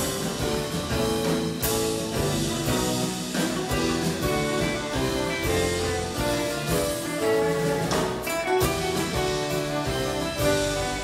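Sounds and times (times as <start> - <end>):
live band playing instrumental: 0.0 - 11.0.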